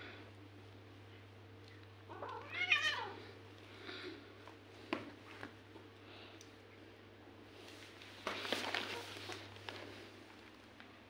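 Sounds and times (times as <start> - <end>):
cat meowing: 2.1 - 3.2.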